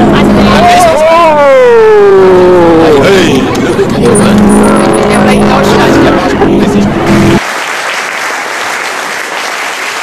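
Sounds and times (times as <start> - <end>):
propeller plane engine drone: 0.0 - 7.4.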